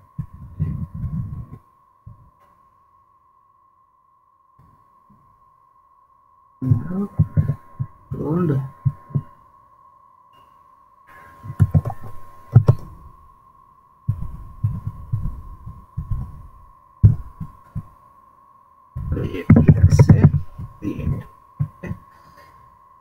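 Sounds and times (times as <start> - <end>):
faint high-pitched tone: 0.0 - 23.0.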